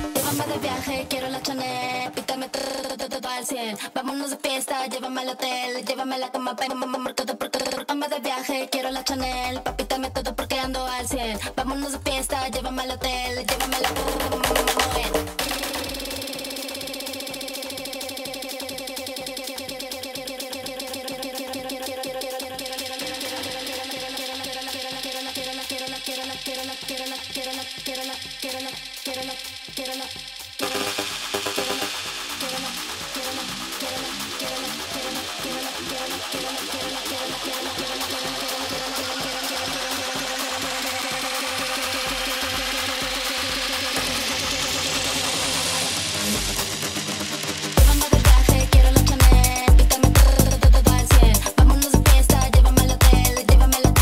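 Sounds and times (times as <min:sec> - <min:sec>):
hissing riser: 0:00.0 - 0:03.0, 0:20.5 - 0:48.7
electronic dance music: 0:00.0 - 0:54.0
kick drum beat: 0:08.9 - 0:54.0
dense low electronic pulse: 0:30.6 - 0:54.0.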